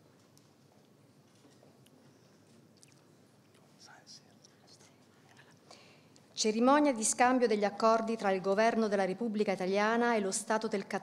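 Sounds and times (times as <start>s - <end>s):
faint whispering: 2.1s - 5.7s.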